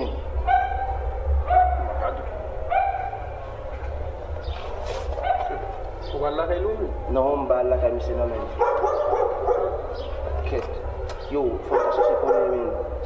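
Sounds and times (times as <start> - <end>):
dog barking: 0.4 - 3.4, 5.2 - 5.7, 8.5 - 10.1, 11.6 - 13.0.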